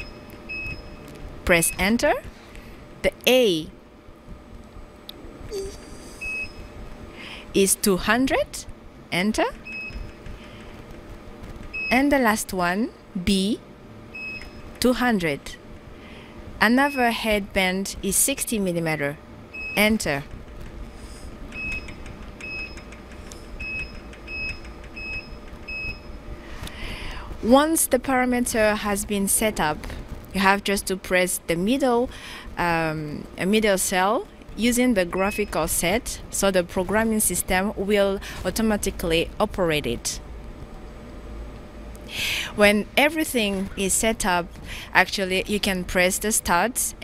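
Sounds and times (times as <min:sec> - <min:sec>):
low steady hum: 0:00.0 - 0:47.0
short high key-press beeps: 0:21.5 - 0:23.0.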